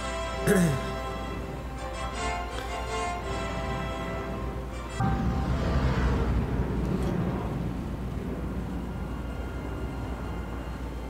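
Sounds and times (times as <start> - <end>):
spaceship passing whoosh: 5.0 - 9.9
spaceship engine rumble: 5.0 - 11.0.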